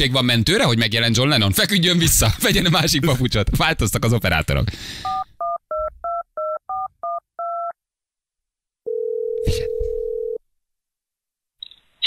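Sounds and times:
keypad dialling beeps: 5.0 - 7.7
phone ringing tone: 8.9 - 10.4.

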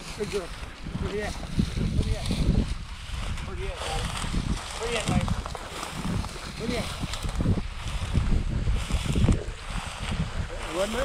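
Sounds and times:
dry grass brushing and crackling: 0.0 - 11.0
wind buffeting microphone: 0.0 - 11.0.

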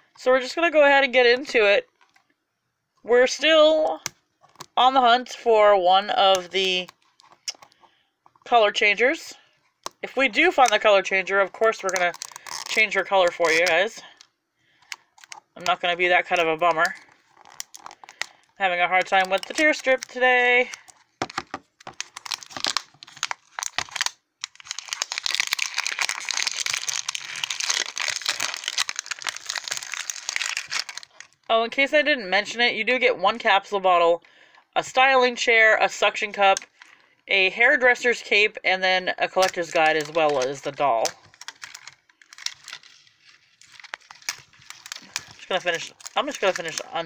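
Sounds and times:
plastic wrapper crinkling: 6.0 - 8.5, 9.3 - 31.5, 39.2 - 47.0.

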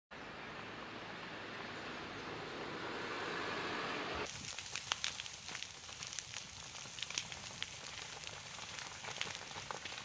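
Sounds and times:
burning scrub crackling: 4.2 - 10.0.

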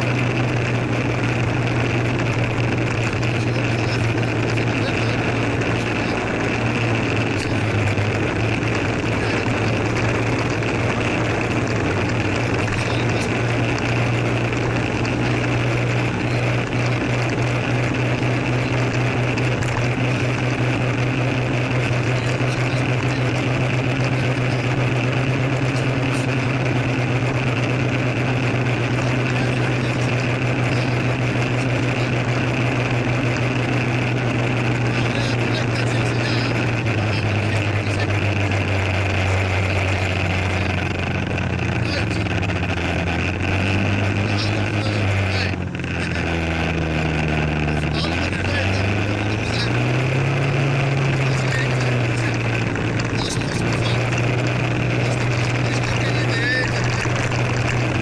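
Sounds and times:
motor scooter engine: 0.0 - 58.0.

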